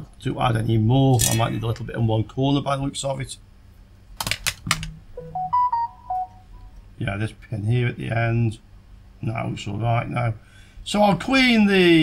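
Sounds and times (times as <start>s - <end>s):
sharp clicks: 4.2s - 5.0s
short tune of pitched notes: 5.1s - 6.7s.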